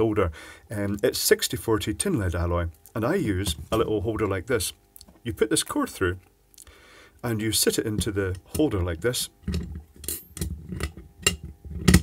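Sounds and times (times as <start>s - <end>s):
solder reel holder clicking and knocking: 9.5s - 12.0s.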